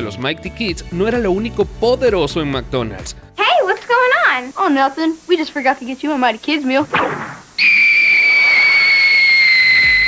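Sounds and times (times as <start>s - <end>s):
faint hiss: 1.1s - 10.0s
whistling tone gliding down: 7.6s - 10.0s.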